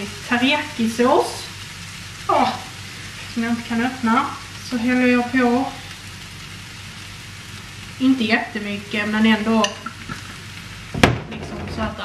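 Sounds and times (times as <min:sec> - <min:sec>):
noodles sizzling in frying pan: 0:00.0 - 0:12.0.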